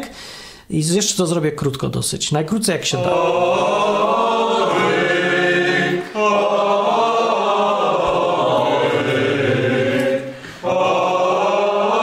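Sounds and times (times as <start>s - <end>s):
choir singing chant-like phrases: 3.0s - 12.0s.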